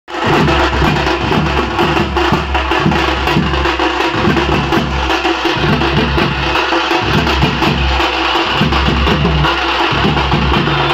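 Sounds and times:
drum band playing fast rhythm: 0:00.1 - 0:10.9
bass drum booms: 0:00.2 - 0:10.9.

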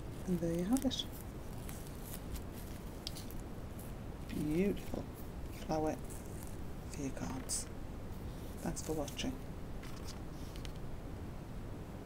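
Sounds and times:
fingers rustling ribbon: 0:00.0 - 0:10.8
low background hum: 0:00.0 - 0:12.0.

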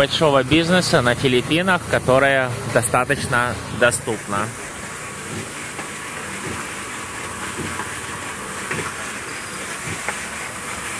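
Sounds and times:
concrete mixer running: 0:00.0 - 0:10.9
strong hiss: 0:00.0 - 0:10.9.

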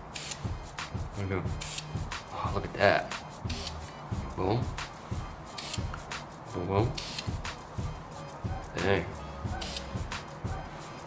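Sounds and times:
spray can hissing: 0:00.0 - 0:01.0, 0:01.6 - 0:02.2, 0:04.8 - 0:06.4, 0:07.0 - 0:11.0.

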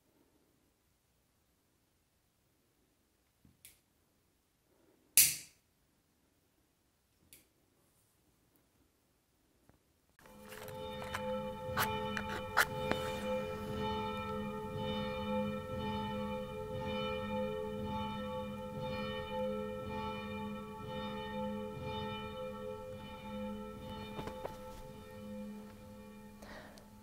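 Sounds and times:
church bells ringing: 0:10.2 - 0:27.0.

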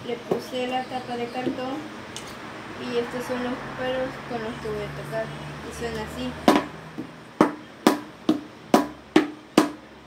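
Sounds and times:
sticks striking paint can drum: 0:07.4 - 0:09.8.

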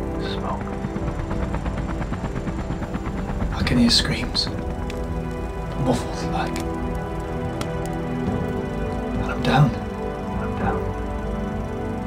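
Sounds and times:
low fluttering engine rumble: 0:00.0 - 0:12.0.

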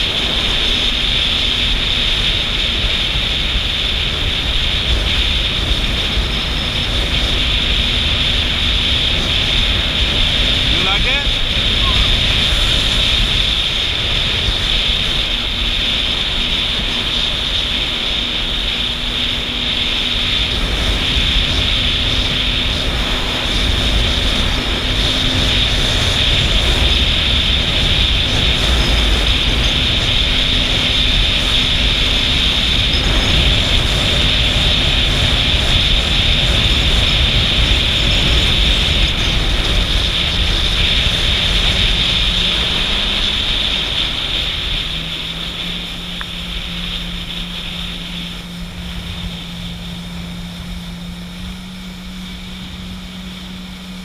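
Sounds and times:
jet ski engine drone: 0:00.0 - 0:54.0
water hissing from hull: 0:00.0 - 0:54.0
wind rushing over microphone: 0:00.0 - 0:54.0.

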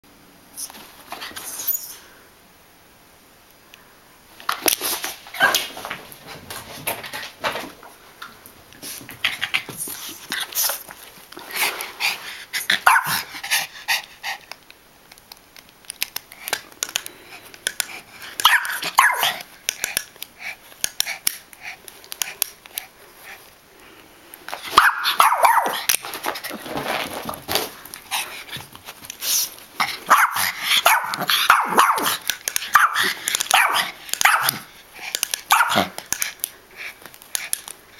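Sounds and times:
dog barking: 0:12.8 - 0:13.2, 0:18.4 - 0:19.4, 0:24.8 - 0:25.8, 0:30.1 - 0:34.6, 0:35.5 - 0:35.9.

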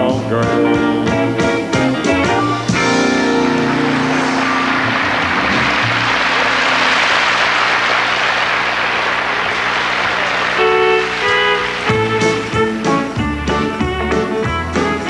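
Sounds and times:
band playing: 0:00.0 - 0:15.0
audience applauding: 0:02.3 - 0:12.9.

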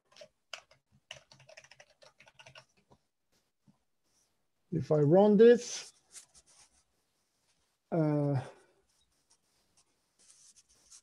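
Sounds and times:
typing on computer keyboard: 0:00.0 - 0:03.0.

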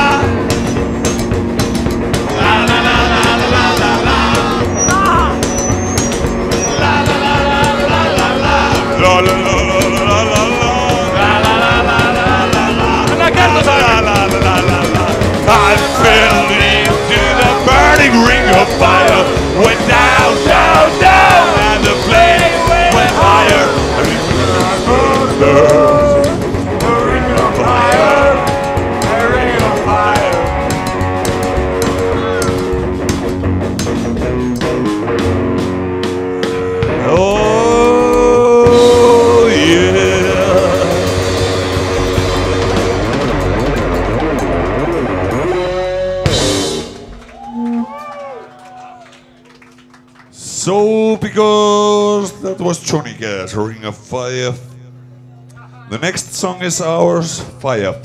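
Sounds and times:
steady drum beat: 0:00.0 - 0:47.8
bass guitar: 0:00.0 - 0:58.0
electric guitar lead lines: 0:00.0 - 0:58.0.

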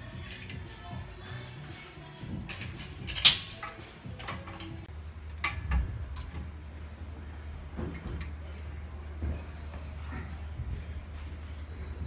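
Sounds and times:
low steady hum: 0:00.0 - 0:12.0
gym machine clicks and knocks: 0:02.4 - 0:06.5.

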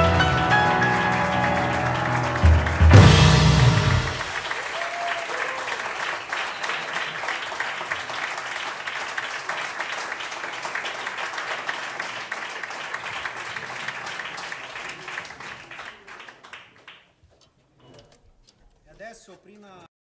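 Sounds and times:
audience applauding: 0:00.0 - 0:17.1.

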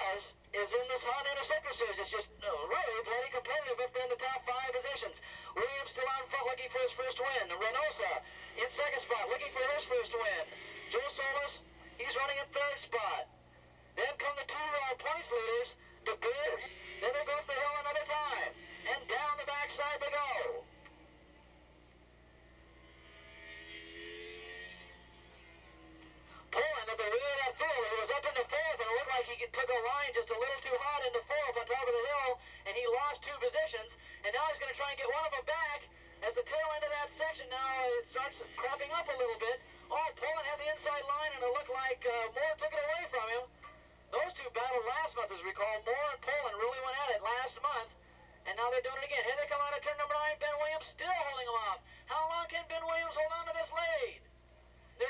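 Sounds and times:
commentator over loudspeaker: 0:00.0 - 0:21.0, 0:26.3 - 0:54.3.

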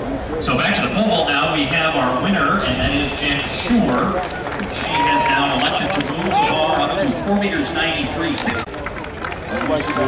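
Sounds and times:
public address announcer talking: 0:00.4 - 0:10.0.

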